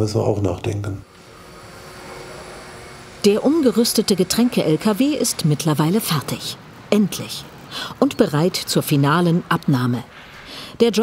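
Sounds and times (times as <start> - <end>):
electric truck whirring hum: 1.0 - 9.3.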